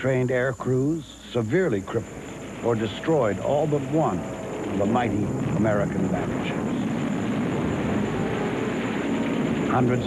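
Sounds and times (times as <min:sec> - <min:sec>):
propeller aircraft engine rumble: 0:01.4 - 0:10.0.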